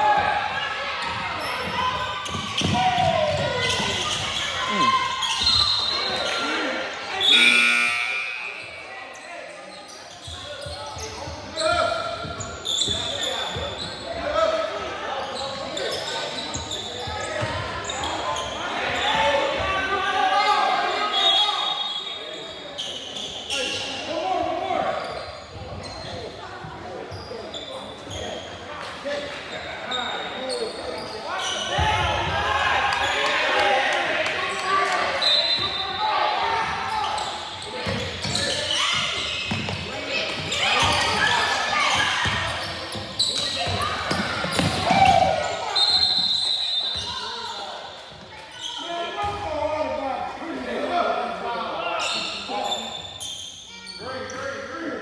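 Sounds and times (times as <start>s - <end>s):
players and spectators calling out: 0.0s - 55.0s.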